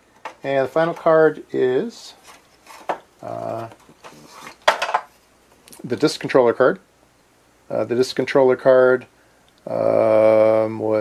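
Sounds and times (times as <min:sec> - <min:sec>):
circuit board scraping clatter: 0:02.2 - 0:05.0.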